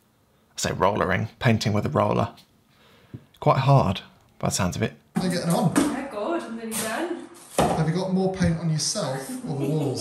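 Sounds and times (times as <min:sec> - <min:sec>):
people talking: 0:03.4 - 0:10.0.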